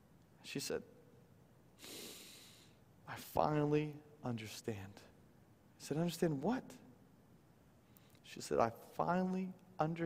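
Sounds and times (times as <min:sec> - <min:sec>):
man sniffing through nose: 0:01.8 - 0:02.7.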